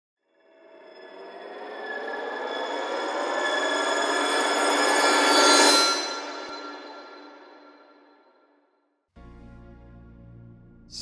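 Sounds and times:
cinematic riser ringing tones: 0.4 - 8.1.

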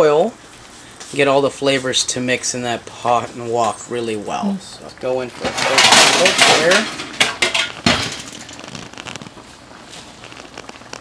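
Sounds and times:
liquid boiling in a wok: 0.0 - 11.0.

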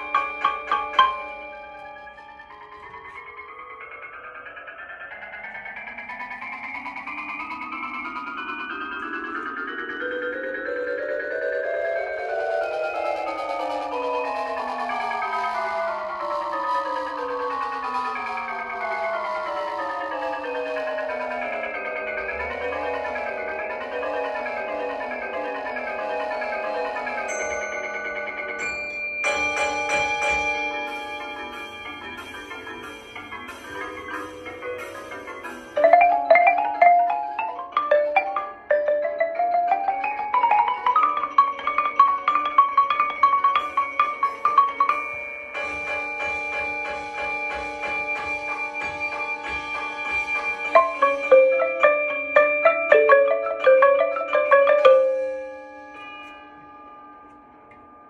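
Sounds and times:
ringing bell-like chord: 0.0 - 7.1, 20.2 - 38.7, 39.9 - 58.0
mallet percussion fast runs: 0.0 - 58.0.

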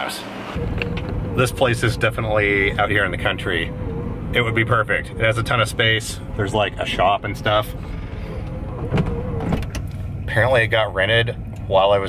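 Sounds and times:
engine hum inside vehicle: 0.0 - 12.0.

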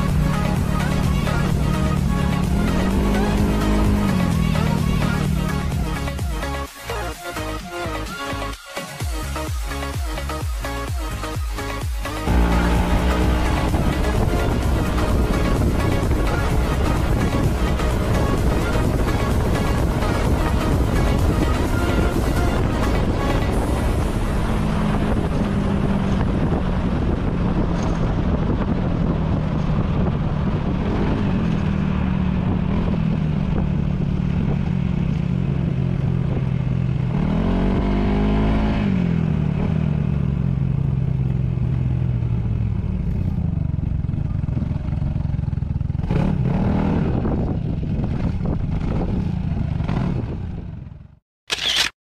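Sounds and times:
scooter engine running: 0.0 - 6.7, 12.2 - 51.9
road and wind noise: 0.0 - 52.0.

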